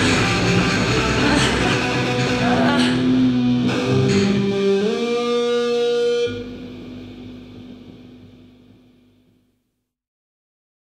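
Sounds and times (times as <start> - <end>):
grunge rock band playing: 0.0 - 8.2
guitar chord ringing out: 0.0 - 9.3
electric guitar note bending: 0.0 - 9.5.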